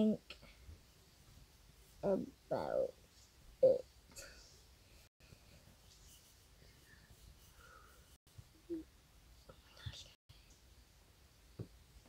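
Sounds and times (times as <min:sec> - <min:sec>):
soft whisper: 0:04.1 - 0:10.7.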